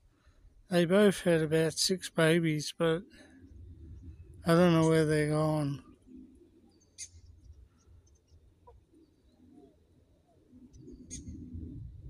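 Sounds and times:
faint bird chirps: 3.3 - 11.6
low rumble: 3.4 - 4.8, 11.2 - 12.0.

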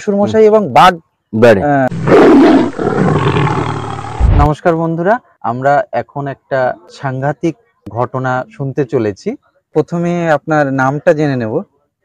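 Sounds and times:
tiger roaring: 1.9 - 4.5.

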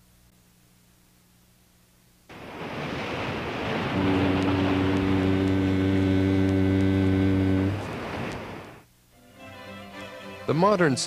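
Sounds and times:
surf-like rushing noise: 2.3 - 8.8
deep horn long note: 3.8 - 8.0.

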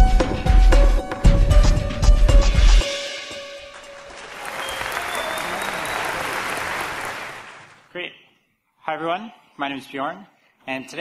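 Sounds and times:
audience applauding: 3.5 - 7.9.

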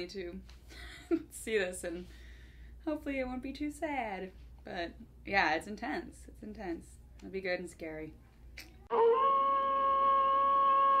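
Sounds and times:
wolf howl: 8.9 - 11.0.

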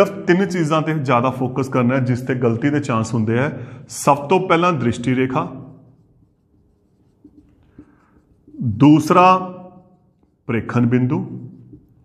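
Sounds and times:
marker pen scratching on whiteboard: 4.0 - 12.0.

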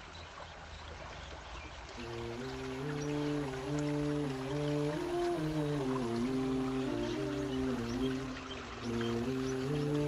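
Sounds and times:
rain: 0.0 - 10.0
soft wordless vocal humming: 2.0 - 10.0.

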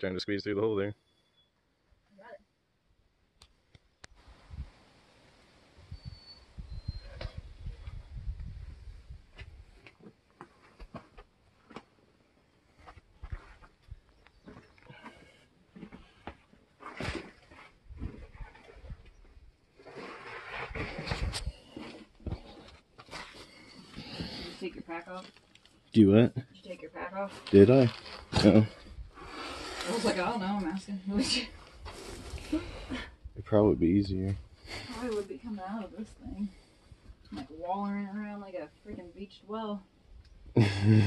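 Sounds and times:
scrapes and knocks against rock: 14.3 - 19.2, 19.8 - 25.4.

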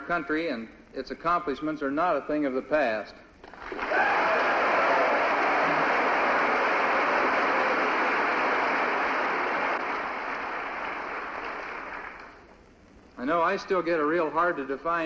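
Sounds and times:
audience applauding: 3.4 - 12.5.

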